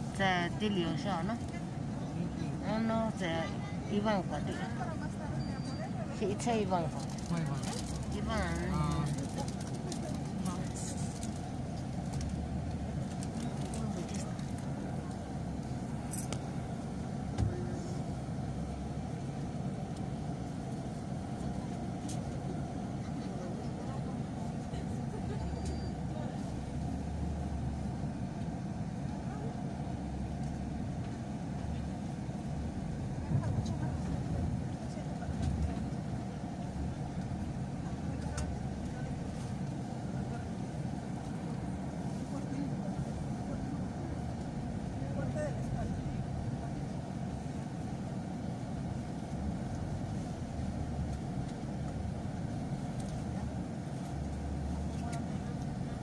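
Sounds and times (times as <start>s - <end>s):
street traffic: 0.0s - 56.0s
vehicle engine rumbling: 0.0s - 56.0s.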